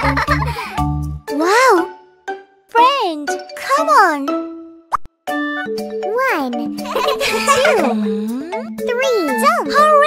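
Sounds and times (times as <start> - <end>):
children's music: 0.0 - 10.0.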